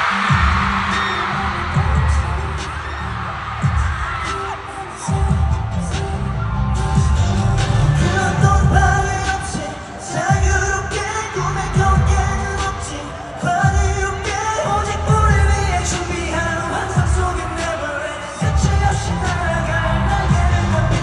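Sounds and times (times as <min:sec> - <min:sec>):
pop song over sound system: 0:00.0 - 0:21.0.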